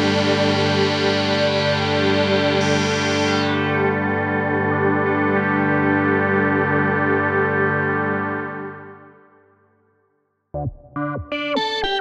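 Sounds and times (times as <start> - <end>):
synthesizer buzzy chord: 0.0 - 10.0, 10.6 - 12.0.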